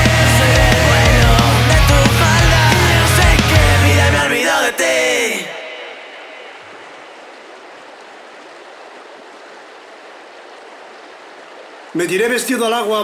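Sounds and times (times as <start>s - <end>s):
running water rushing: 0.0s - 13.0s.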